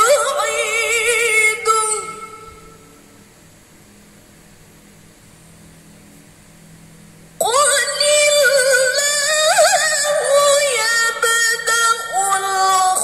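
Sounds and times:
woman reciting melodically: 0:00.0 - 0:02.8, 0:07.4 - 0:13.0
faint steady hum: 0:00.0 - 0:13.0.

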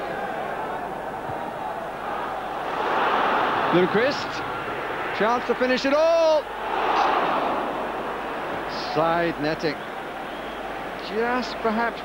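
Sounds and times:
stadium crowd roaring: 0:00.0 - 0:12.0.

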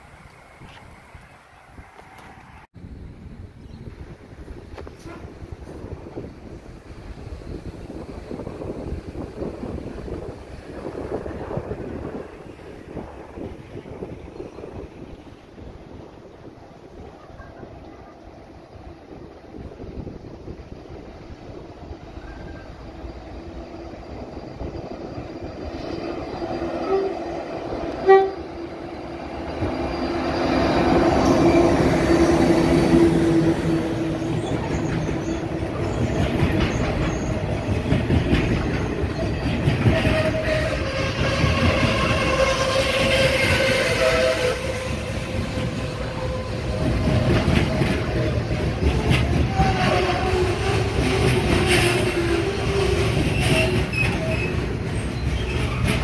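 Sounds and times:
freight train passing: 0:00.0 - 0:56.0
train horn: 0:05.0 - 0:05.4, 0:26.7 - 0:27.3, 0:28.0 - 0:28.8, 0:39.8 - 0:46.9, 0:49.4 - 0:54.5
wheels clacking over rail joints: 0:21.8 - 0:56.0.

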